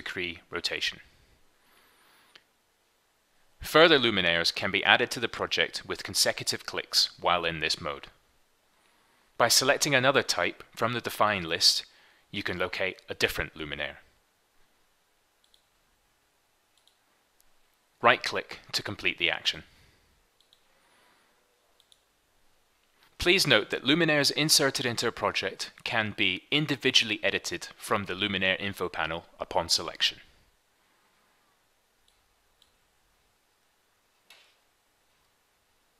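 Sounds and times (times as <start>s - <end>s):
computer mouse clicks: 15.4s - 15.7s, 16.7s - 17.0s, 20.4s - 20.7s, 21.8s - 22.1s.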